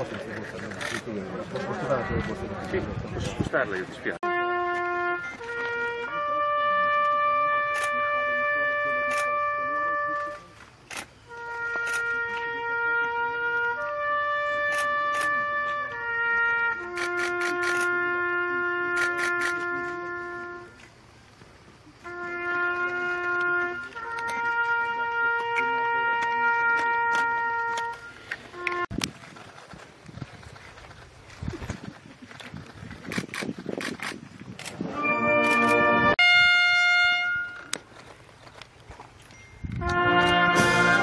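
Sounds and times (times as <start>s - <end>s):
solo trumpet slow call: 4.2s - 10.6s, 11.3s - 20.9s, 22.0s - 29.0s, 34.9s - 37.9s, 39.7s - 41.0s
camera shutters clicking: 10.9s - 11.1s, 16.9s - 17.9s, 18.9s - 19.6s, 33.1s - 34.8s, 35.4s - 35.8s.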